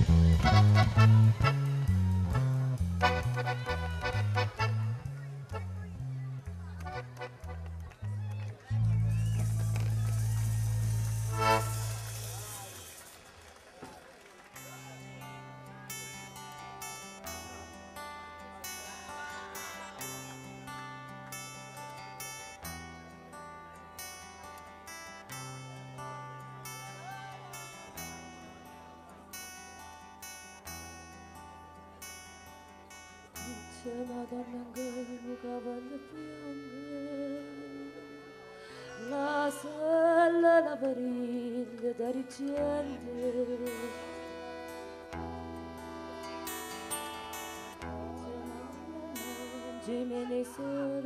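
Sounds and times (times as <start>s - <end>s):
button accordion chord: 0.0s - 7.9s, 9.4s - 12.6s, 31.4s - 40.4s, 41.8s - 50.8s
acoustic guitar picking: 14.6s - 39.6s, 41.9s - 51.0s.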